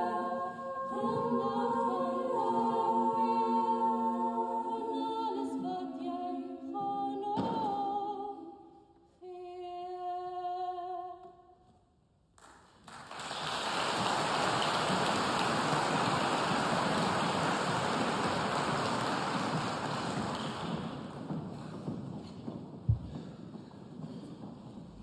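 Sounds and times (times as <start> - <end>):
women's choir chord: 0.0 - 8.5
audience applause: 12.8 - 21.3.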